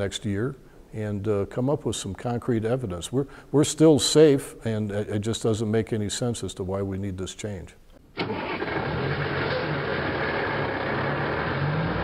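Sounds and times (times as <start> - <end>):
diesel truck engine starting: 8.2 - 12.0.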